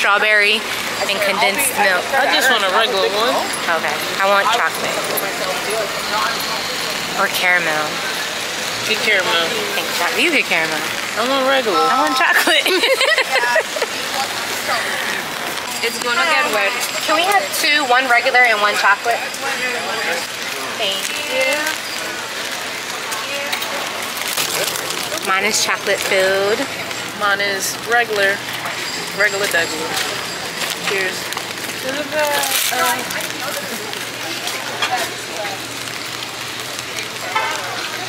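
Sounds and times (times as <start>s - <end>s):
faint voices: 0.0s - 38.0s
rain on an umbrella: 0.0s - 38.0s
street noise: 0.0s - 38.0s.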